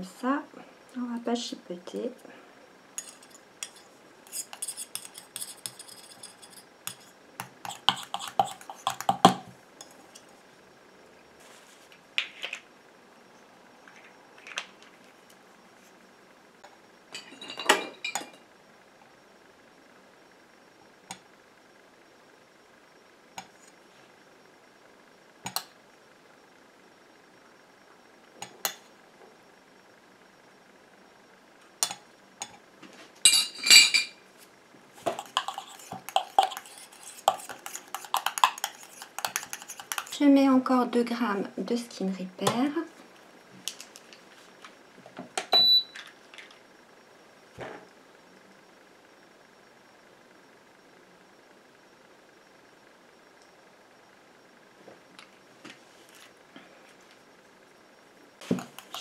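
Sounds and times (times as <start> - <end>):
spoon clinking against metal bowl: 3.0 - 7.1, 35.1 - 40.2.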